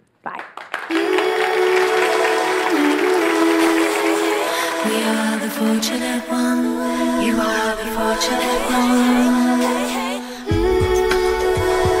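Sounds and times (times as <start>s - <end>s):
studio audience applauding: 0.4s - 6.0s.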